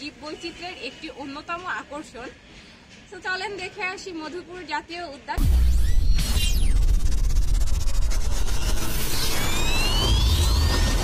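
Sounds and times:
low rumble: 0:05.4 - 0:11.0.

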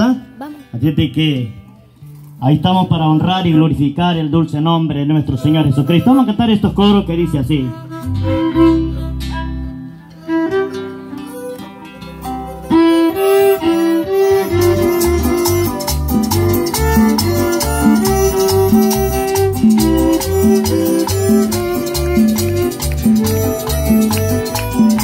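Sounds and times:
violin melody: 0:05.0 - 0:25.0
strummed guitars: 0:05.2 - 0:25.0
repeating bass beat: 0:14.2 - 0:25.0.

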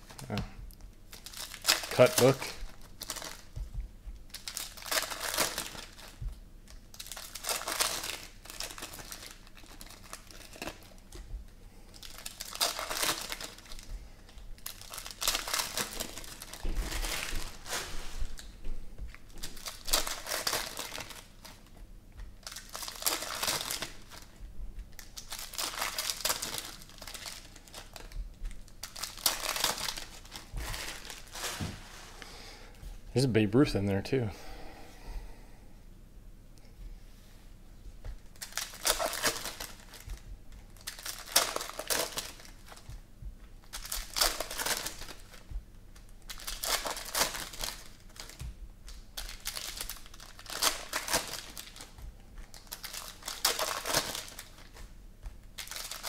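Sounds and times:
foil wrappers tearing and crinkling: 0:01.1 - 0:03.6, 0:04.3 - 0:18.6, 0:19.3 - 0:21.7, 0:22.3 - 0:31.8, 0:38.2 - 0:43.0, 0:43.6 - 0:56.0.

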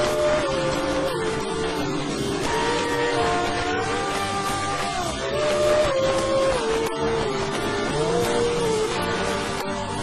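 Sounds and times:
distorted electric guitar lead: 0:00.0 - 0:10.0
rock band playing: 0:00.0 - 0:10.0.

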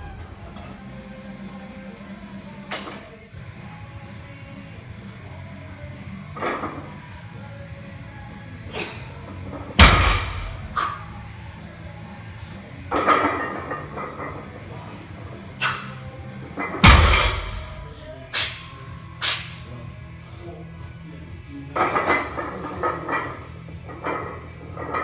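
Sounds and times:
background music: 0:00.0 - 0:25.0
barbell thudding on floor: 0:09.8 - 0:10.8, 0:16.8 - 0:17.8.

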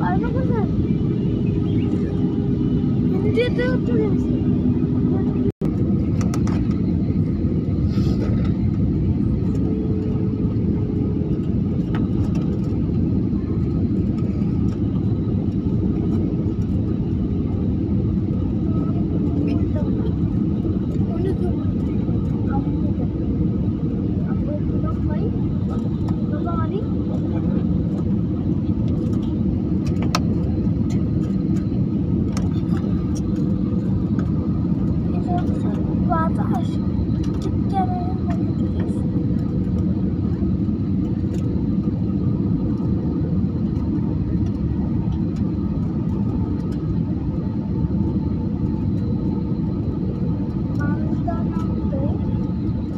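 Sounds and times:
jet airliner cabin rumble: 0:00.0 - 0:52.9.

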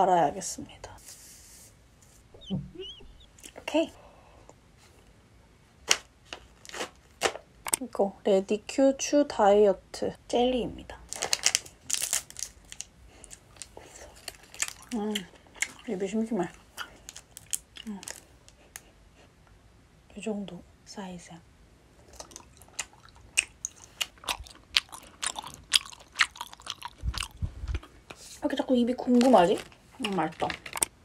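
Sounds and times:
person chewing gummy: 0:11.1 - 0:15.9, 0:16.5 - 0:18.8, 0:22.0 - 0:28.1
plastic snack pouch crinkling: 0:11.1 - 0:15.9, 0:16.5 - 0:18.8, 0:29.0 - 0:30.9.

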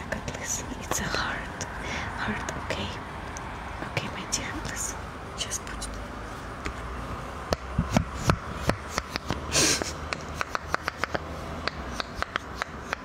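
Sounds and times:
fidget toy popping: 0:10.1 - 0:13.0.

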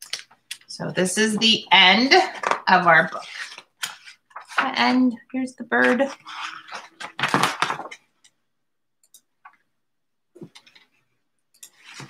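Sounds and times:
book rustling and knocks: 0:06.4 - 0:08.0.

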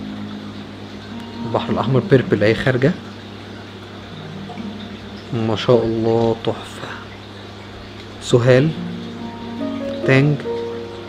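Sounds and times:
moving water: 0:00.0 - 0:11.0.

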